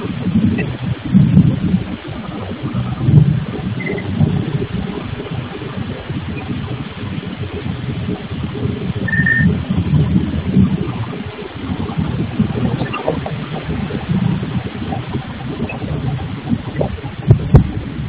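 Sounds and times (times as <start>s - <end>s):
brief high whine: 9.1s - 9.5s.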